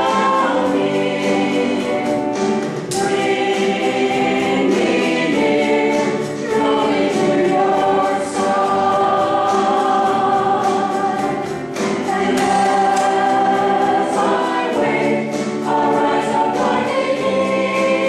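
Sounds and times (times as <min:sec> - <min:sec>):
drums: 0:00.0 - 0:18.0
group singing worship song: 0:00.0 - 0:18.0
piano accompaniment: 0:00.0 - 0:18.0.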